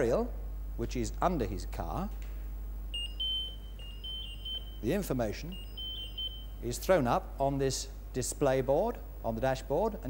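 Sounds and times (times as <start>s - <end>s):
low mains hum: 0.0s - 10.0s
high-pitched electronic beeping: 2.9s - 6.6s.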